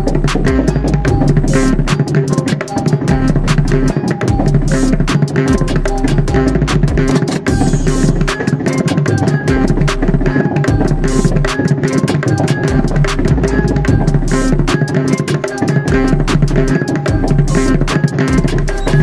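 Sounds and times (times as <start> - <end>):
deep bass notes: 0.0 - 2.2, 3.0 - 8.4, 9.3 - 11.6, 12.4 - 14.9, 15.9 - 19.0
hand drum strokes: 0.0 - 19.0
hi-hat ticks: 0.0 - 19.0.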